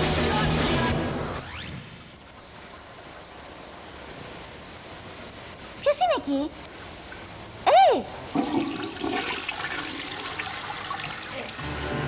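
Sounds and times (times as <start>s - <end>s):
toilet flushing: 8.3s - 12.0s.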